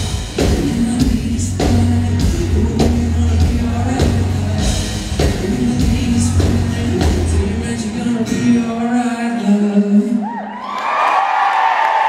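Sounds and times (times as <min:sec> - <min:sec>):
audience cheering and screaming: 0:10.2 - 0:12.0
single whoop: 0:10.2 - 0:12.0.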